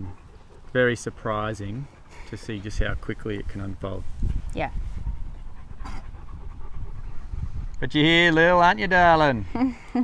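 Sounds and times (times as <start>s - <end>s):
dog panting: 0.0s - 8.7s.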